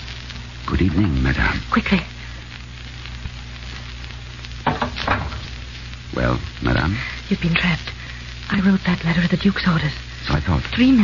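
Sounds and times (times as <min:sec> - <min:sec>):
low hum: 0:00.0 - 0:10.3
old radio recording hiss and crackle: 0:00.0 - 0:11.0.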